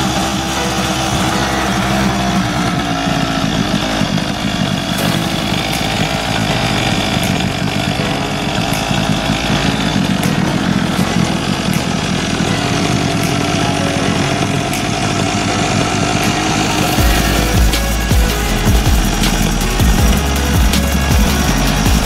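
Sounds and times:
two-stroke engine idling: 0.0s - 22.0s.

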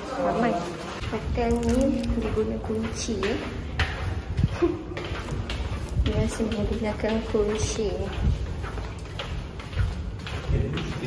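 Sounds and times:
soft footsteps in corridor: 0.0s - 11.0s.

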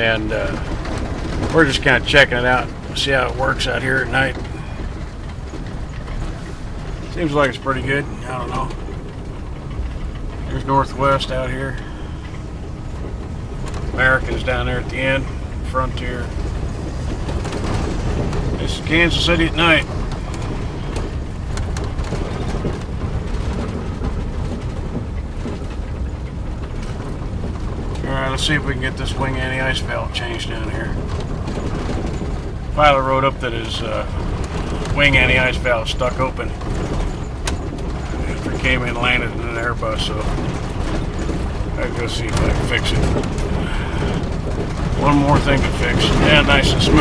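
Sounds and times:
faint rattles: 0.0s - 47.0s
vehicle engine and tyres rumbling: 0.0s - 47.0s.

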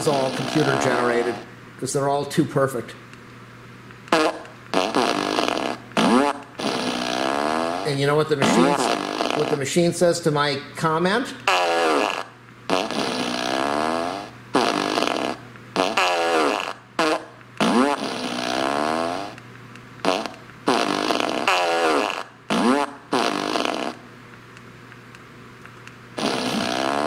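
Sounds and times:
electronic fart sounds: 0.0s - 1.4s, 4.1s - 9.7s, 11.4s - 19.4s, 20.0s - 24.0s, 26.2s - 27.0s.

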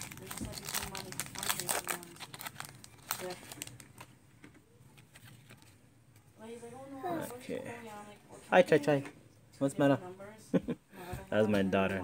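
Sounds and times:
cards rustling: 0.0s - 4.1s, 4.9s - 5.8s
foil pack crinkling and tearing: 0.0s - 4.1s.

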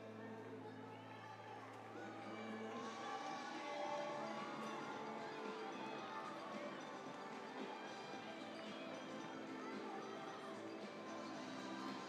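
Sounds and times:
music over public address: 0.0s - 12.0s
overlapping voices of players and crowd: 0.0s - 12.0s.

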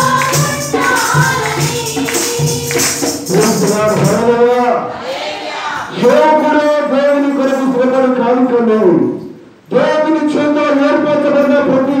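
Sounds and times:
man singing through loudspeaker: 3.3s - 4.9s, 6.0s - 8.1s, 9.7s - 12.0s.

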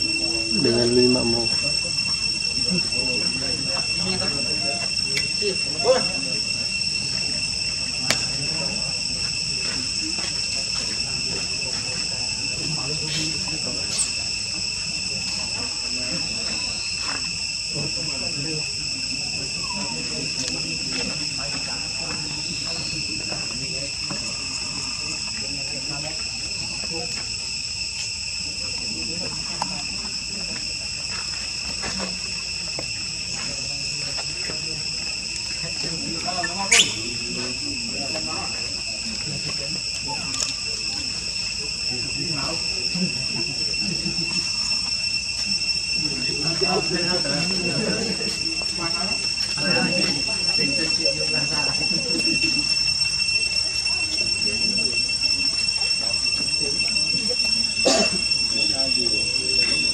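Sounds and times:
faint voices: 0.0s - 59.9s
insects droning: 0.0s - 59.9s.

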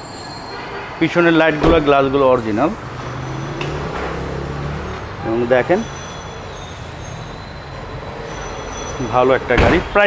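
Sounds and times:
high-pitched whining tones: 2.9s - 9.1s.

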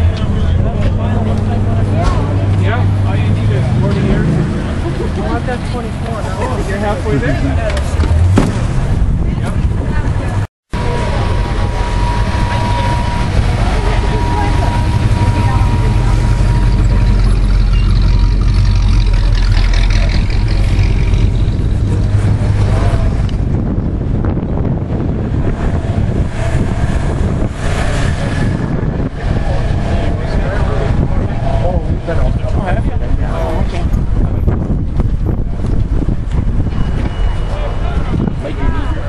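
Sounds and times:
people chattering: 0.0s - 39.0s
vehicle engine rumbling: 0.0s - 39.0s.

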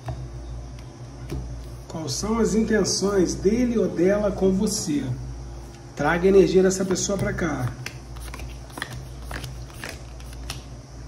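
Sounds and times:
cards slapping onto a surface: 6.9s - 10.7s.

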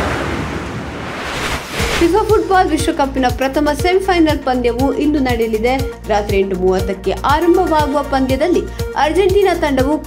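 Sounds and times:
rushing whoosh: 0.0s - 2.4s.

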